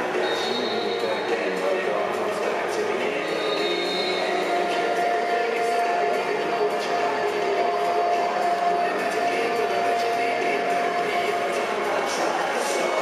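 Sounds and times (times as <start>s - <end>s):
distant chatter: 0.0s - 13.0s
music over public address: 0.0s - 13.0s
steady held tone: 0.0s - 13.0s.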